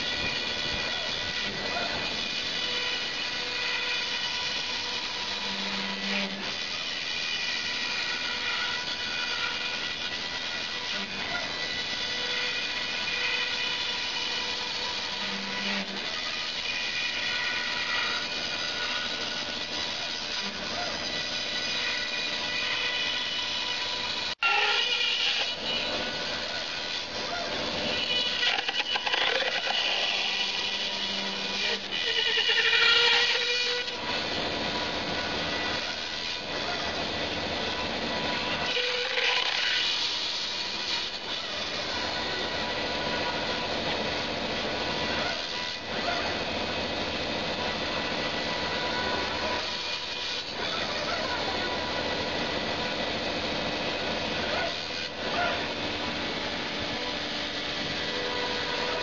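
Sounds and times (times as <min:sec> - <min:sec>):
router motors whining: 0:00.0 - 0:59.0.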